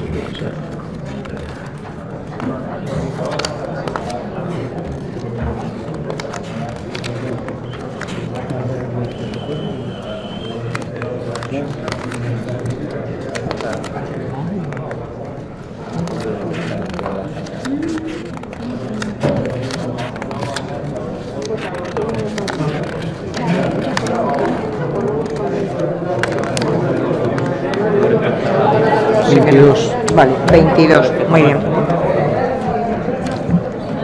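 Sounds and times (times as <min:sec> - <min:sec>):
paper ballots crackling: 0:00.0 - 0:28.4
murmur of many people talking: 0:00.0 - 0:34.0.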